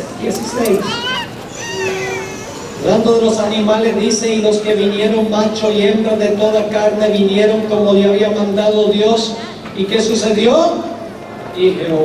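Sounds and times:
high-pitched wavering cry: 0.0 - 3.3
preacher speaking: 0.0 - 4.4.

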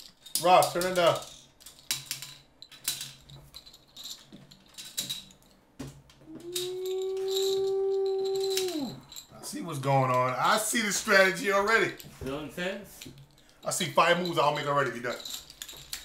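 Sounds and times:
plastic checkers clattering: 0.0 - 16.0
person humming note: 6.2 - 9.0.

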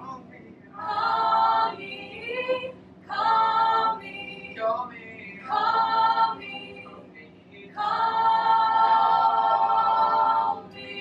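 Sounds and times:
unaccompanied singing voices: 0.8 - 11.0.

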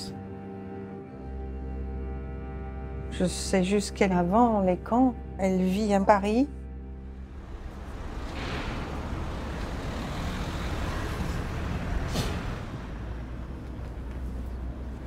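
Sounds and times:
vehicles passing: 6.8 - 15.0.

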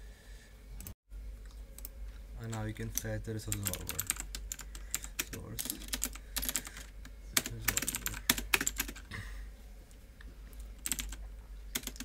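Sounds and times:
steady low hum: 0.0 - 12.0
typing on computer keyboard: 3.5 - 9.0, 10.8 - 12.0.

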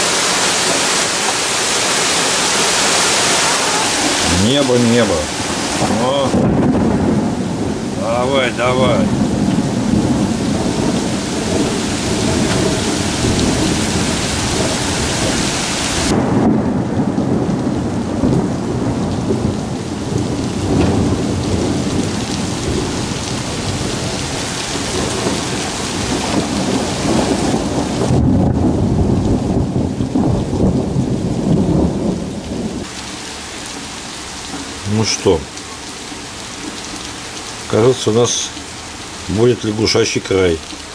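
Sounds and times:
heavy rain: 0.0 - 40.9.

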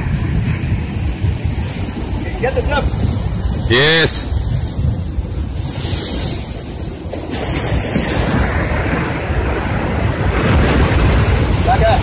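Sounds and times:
surf breaking on rocks: 0.0 - 12.0
wind buffeting microphone: 0.0 - 12.0.

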